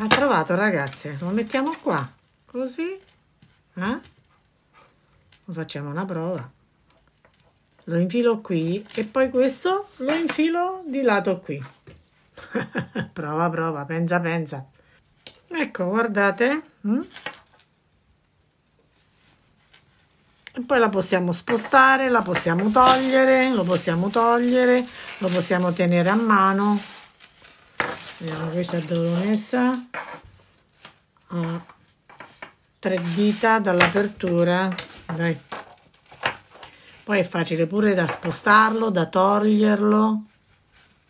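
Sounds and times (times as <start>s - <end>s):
person speaking: 0.0s - 3.1s, 20.5s - 27.2s, 27.8s - 30.2s, 31.2s - 31.8s, 32.8s - 35.6s, 36.8s - 40.3s.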